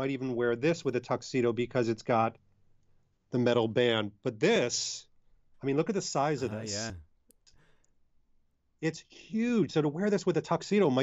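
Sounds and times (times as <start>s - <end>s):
man speaking: 5.6s - 7.0s.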